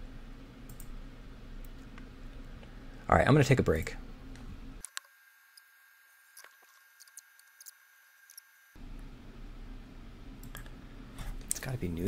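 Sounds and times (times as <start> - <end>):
soft clicks: 0.7 - 1.0.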